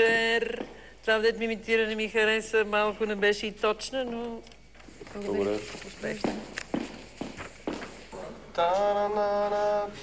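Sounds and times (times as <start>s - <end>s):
heels clicking on a floor: 6.0s - 8.0s.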